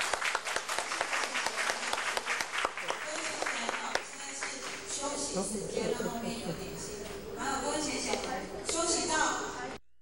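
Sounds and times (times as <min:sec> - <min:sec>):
audience applauding: 0:00.0 - 0:04.9.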